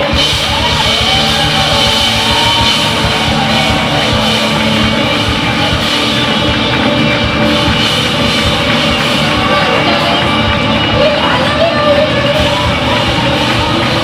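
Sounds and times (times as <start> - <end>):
rock band playing live: 0.0 - 14.0.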